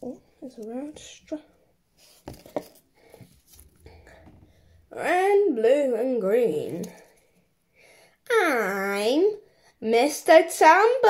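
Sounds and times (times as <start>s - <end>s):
light rustling of handling: 2.0s - 4.7s.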